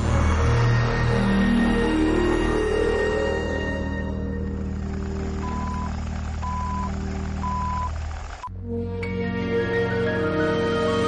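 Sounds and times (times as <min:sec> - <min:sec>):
low hum with flutter: 0:00.0 - 0:08.5.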